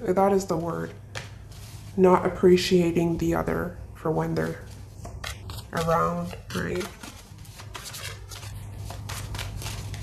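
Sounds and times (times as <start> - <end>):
low steady hum: 0.0 - 10.0
cards being shuffled: 4.6 - 10.0.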